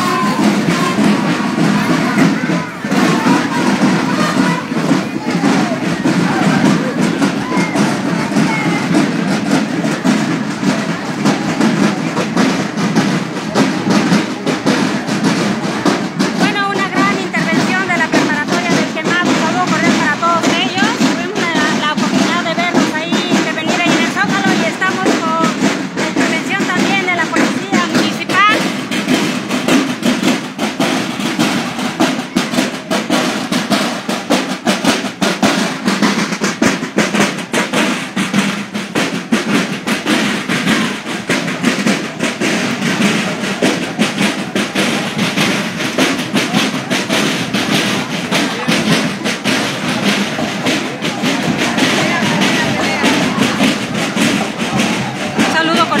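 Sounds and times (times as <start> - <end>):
crowd voices: 0.0 - 56.0
marching drums: 0.0 - 56.0.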